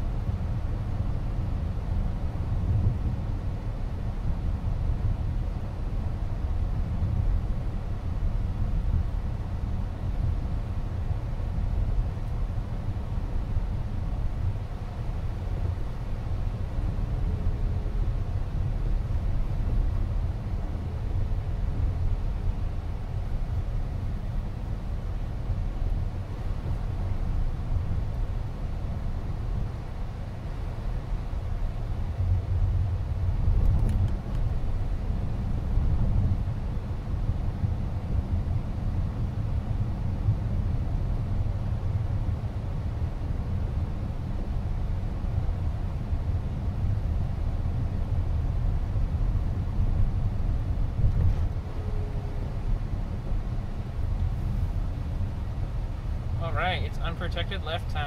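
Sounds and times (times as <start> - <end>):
road and tyre rumble in car cabin: 0.0 - 58.0.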